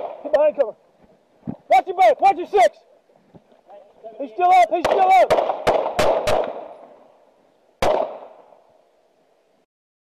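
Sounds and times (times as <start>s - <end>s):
echo of rapid gunshots: 4.7s - 6.7s, 7.8s - 8.4s
handgun shot echoing: 4.8s - 6.7s, 7.8s - 8.4s.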